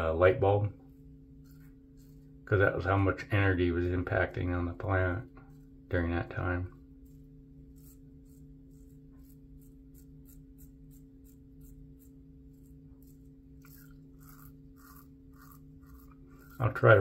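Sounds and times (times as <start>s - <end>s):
low hum: 0.0s - 17.0s
razor scraping stubble: 0.0s - 17.0s.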